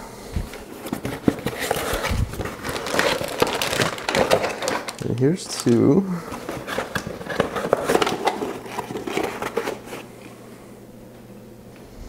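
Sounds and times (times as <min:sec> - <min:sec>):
cardboard scraping: 0:00.6 - 0:10.3
plastic bag crinkling: 0:00.6 - 0:10.3.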